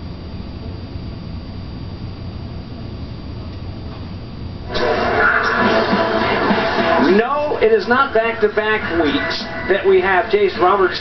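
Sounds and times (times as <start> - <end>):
low steady hum: 0.0 - 11.0
loud television music: 4.6 - 11.0.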